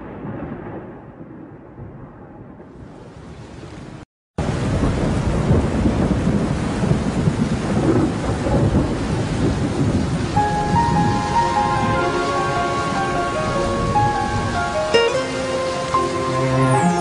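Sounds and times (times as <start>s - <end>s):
thunder rumbling: 0.0s - 3.5s, 4.4s - 17.0s
heavy rain: 2.6s - 17.0s.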